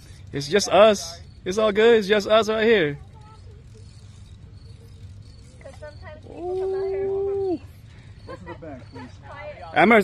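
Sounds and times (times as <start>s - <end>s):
man's long drawn-out shout: 6.5s - 7.7s.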